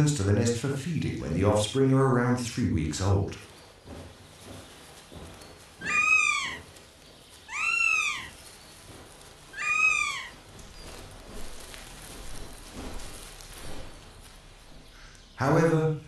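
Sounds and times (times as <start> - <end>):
hawk mewing wails: 5.8 - 6.8, 7.5 - 8.4, 9.5 - 10.6.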